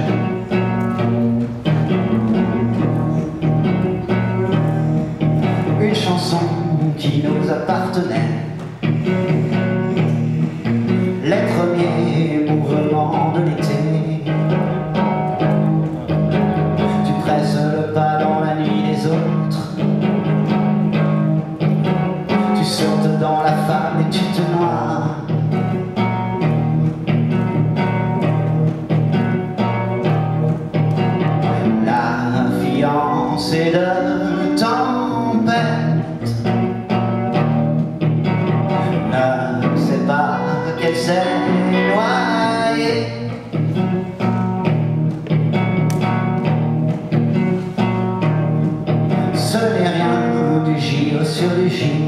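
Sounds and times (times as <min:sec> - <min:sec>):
plucked notes: 0:00.0 - 0:50.8
live band playing: 0:00.0 - 0:52.0
man singing: 0:05.4 - 0:08.6, 0:11.1 - 0:15.0, 0:16.8 - 0:19.9, 0:22.3 - 0:25.6, 0:31.4 - 0:36.6, 0:38.7 - 0:43.5, 0:49.1 - 0:52.0.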